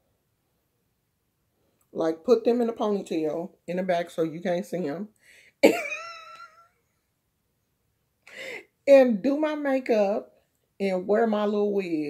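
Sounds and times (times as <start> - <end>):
woman laughing: 5.6 - 6.7.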